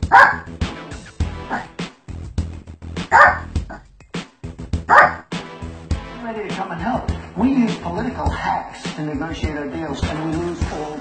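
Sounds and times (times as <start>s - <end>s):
small dog barking: 0.0s - 0.5s, 3.1s - 3.8s, 4.9s - 5.2s
background music with steady beat: 0.0s - 11.0s.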